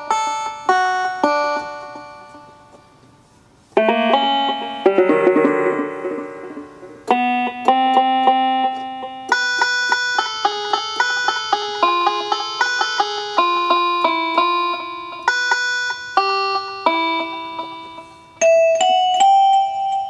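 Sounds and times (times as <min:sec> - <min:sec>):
keyboard playing plucked melody: 0:00.0 - 0:02.9, 0:03.8 - 0:20.0.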